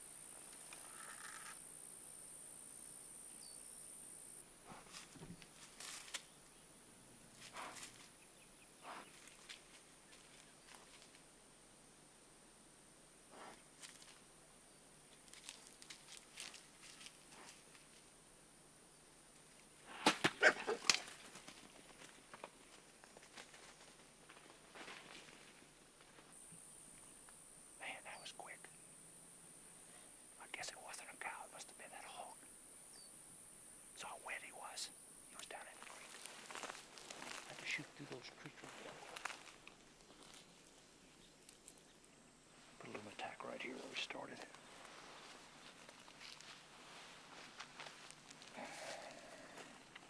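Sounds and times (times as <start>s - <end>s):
footsteps rustling in brush: 4.7s - 6.3s, 7.3s - 8.2s, 9.1s - 11.2s, 13.8s - 14.2s, 15.1s - 18.1s, 20.9s - 26.4s, 35.8s - 40.7s, 43.7s - 49.8s
whispered voices: 27.8s - 28.7s, 30.4s - 32.4s, 34.0s - 36.2s, 42.8s - 44.6s.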